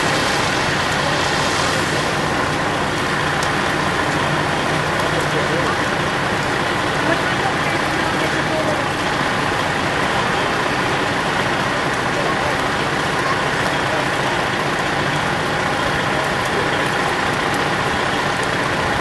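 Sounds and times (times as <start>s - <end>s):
fire truck engines running: 0.0s - 19.0s.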